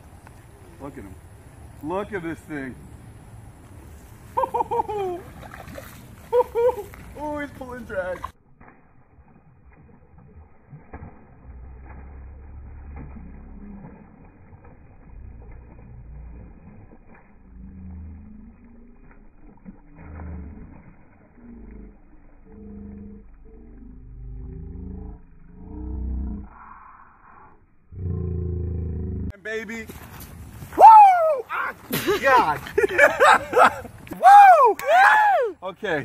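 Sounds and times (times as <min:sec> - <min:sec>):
slowed-down water sounds: 0:00.0 - 0:29.4
deep slowed-down voices: 0:11.3 - 0:29.4.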